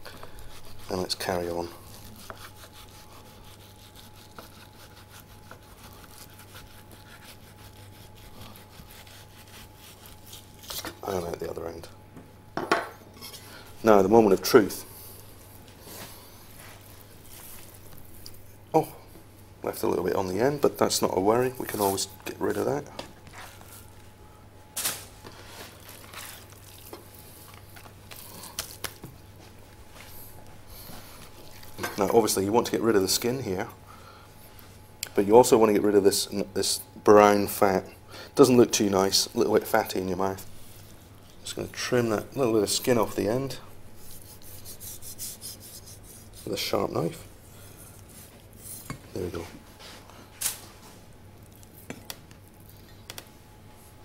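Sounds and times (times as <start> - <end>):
low steady hum: 0.0 - 54.0
knife scraping fish skin: 0.2 - 1.2, 1.8 - 11.0, 44.0 - 46.6.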